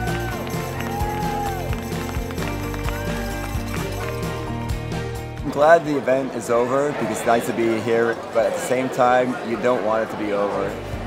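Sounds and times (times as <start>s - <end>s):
background music with steady beat: 0.0s - 5.7s.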